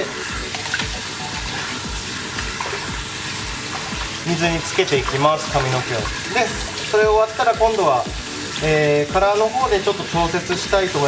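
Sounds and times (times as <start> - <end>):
background music with low beat: 0.0 - 11.0
shower sprayer hissing into basin: 0.0 - 11.0.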